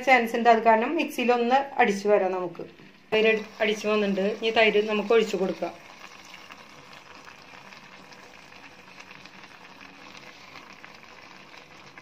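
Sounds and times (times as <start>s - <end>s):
curry bubbling in a pot: 2.3s - 12.0s.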